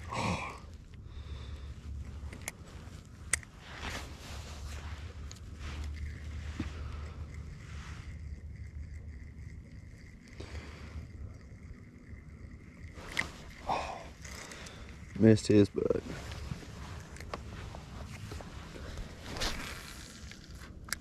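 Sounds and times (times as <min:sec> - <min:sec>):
faint high whine: 0:00.0 - 0:21.0.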